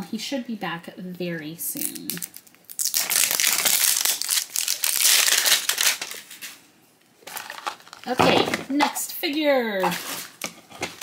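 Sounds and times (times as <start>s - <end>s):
plastic wrapper crinkling: 1.8s - 8.8s, 9.8s - 11.0s.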